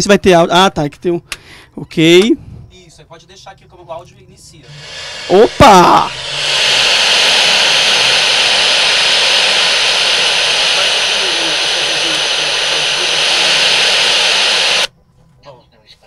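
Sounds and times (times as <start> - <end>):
loud steady hiss from speaker: 4.6 - 14.9.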